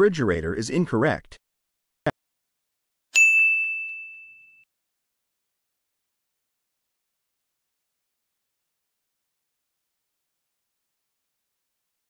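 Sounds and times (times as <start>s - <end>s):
bell-like ding: 3.2s - 4.7s.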